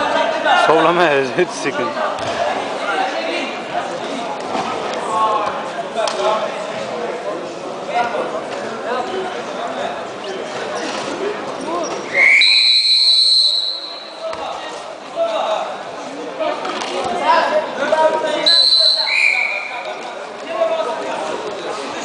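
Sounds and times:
referee's whistle blasts: 0:12.1 - 0:14.2, 0:18.4 - 0:19.9.

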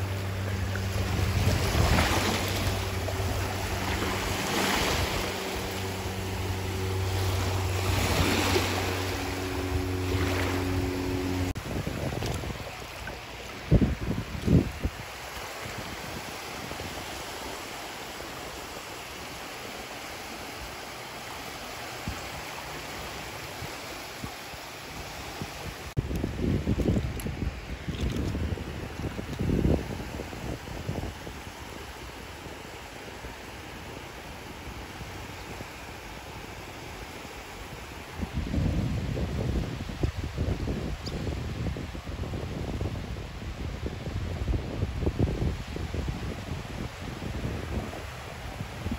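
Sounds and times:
steady low hum: 0:00.0 - 0:14.8
wind on microphone: 0:00.0 - 0:17.6, 0:21.8 - 0:48.9
small waves lapping on sand: 0:00.0 - 0:48.9.

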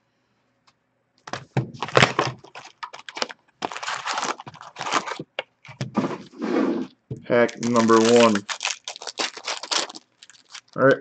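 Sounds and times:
packaging crinkling: 0:01.3 - 0:10.8
cardboard and paper ripping: 0:01.6 - 0:10.8.

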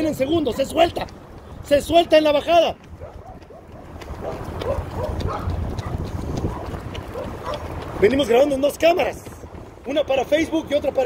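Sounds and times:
road and wind noise rumble: 0:00.0 - 0:11.0.

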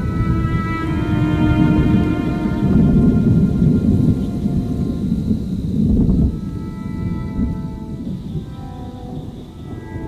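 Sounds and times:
faint sustained music chords: 0:00.0 - 0:10.0
thunder rumbling: 0:00.0 - 0:10.0.

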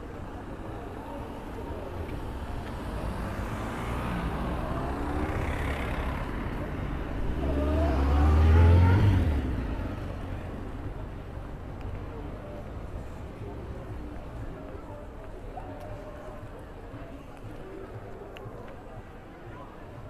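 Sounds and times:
vehicle engine passing by: 0:02.8 - 0:10.5.

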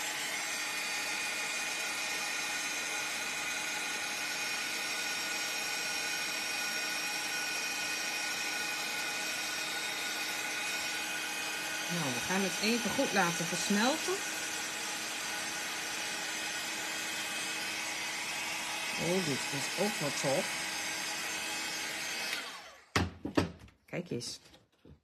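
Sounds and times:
heat gun fan whirring: 0:00.0 - 0:23.1.

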